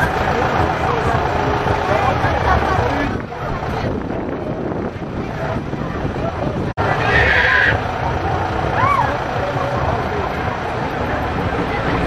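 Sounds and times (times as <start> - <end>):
crowd chatter: 0.0 - 12.0
rising-and-falling cry: 6.9 - 7.8.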